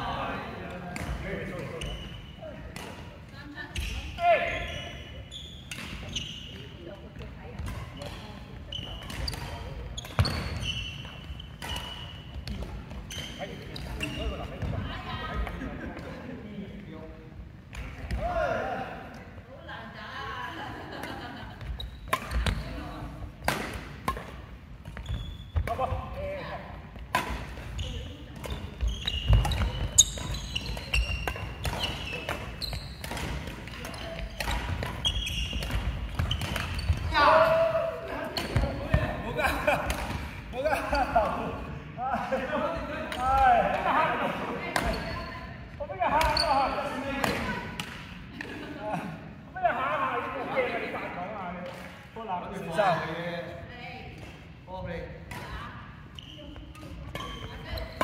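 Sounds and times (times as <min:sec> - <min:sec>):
rackets hitting shuttlecock: 0:02.6 - 0:04.0, 0:09.0 - 0:14.0, 0:21.0 - 0:22.7, 0:23.4 - 0:25.9, 0:27.0 - 0:27.8, 0:28.4 - 0:37.1, 0:38.2 - 0:40.4, 0:43.0 - 0:45.1, 0:46.1 - 0:46.4, 0:47.2 - 0:48.6.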